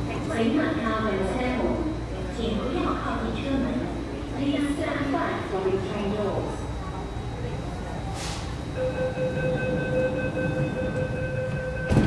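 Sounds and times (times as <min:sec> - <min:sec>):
short hiss: 0:08.1 - 0:08.5
door warning tone: 0:08.8 - 0:12.0
train doors shutting thud: 0:09.8 - 0:12.0.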